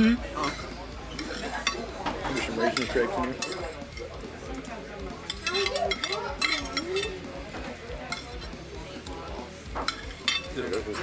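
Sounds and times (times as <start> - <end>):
low voices: 0.0 - 11.0
cutlery scraping ceramic plates: 0.4 - 4.2, 5.2 - 8.6, 9.7 - 11.0.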